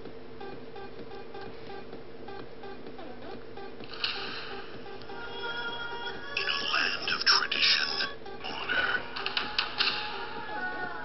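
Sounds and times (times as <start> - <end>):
animated film music on phone speaker: 0.4 - 11.0.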